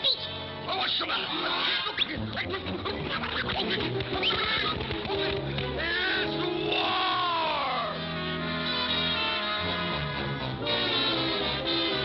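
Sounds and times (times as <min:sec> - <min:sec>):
orchestral cartoon music: 0:00.1 - 0:12.0.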